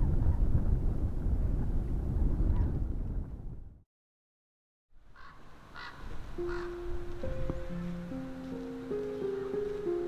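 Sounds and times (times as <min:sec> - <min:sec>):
bird calling: 0:05.1 - 0:10.0
background music held note: 0:06.2 - 0:10.0.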